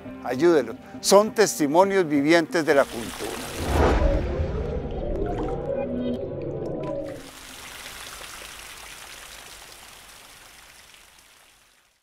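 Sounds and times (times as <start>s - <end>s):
rain falling: 2.8s - 4.1s, 7.1s - 12.0s.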